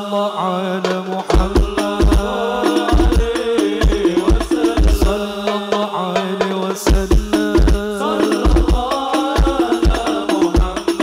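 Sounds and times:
percussion ensemble playing: 0.5 - 11.0.

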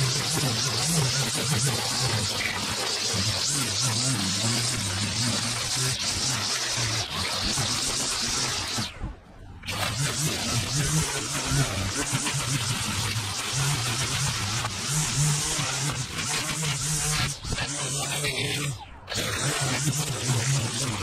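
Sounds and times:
string trimmer cutting dry grass: 0.0 - 9.0, 9.6 - 21.0.

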